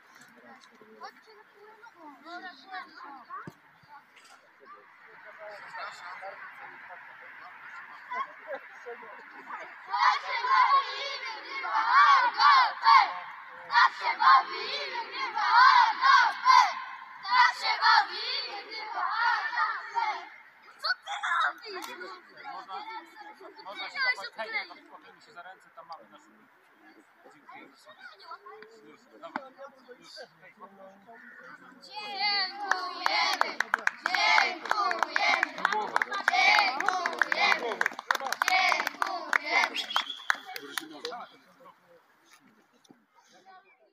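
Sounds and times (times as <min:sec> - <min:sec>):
children shouting and cheering: 0:09.9 - 0:21.9, 0:31.9 - 0:39.8
hand claps: 0:32.7 - 0:41.2.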